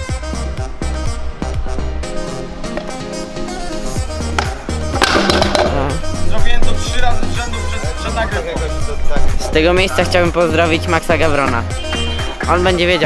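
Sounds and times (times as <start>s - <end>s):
background music with steady beat: 0.0s - 13.0s
scooter wheels clattering on stone: 4.3s - 6.0s.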